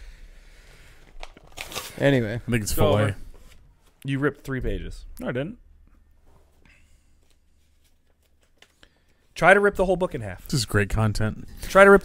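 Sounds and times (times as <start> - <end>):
paper rustling: 1.1 - 2.2, 7.2 - 9.3
paper pages tearing: 1.2 - 2.1.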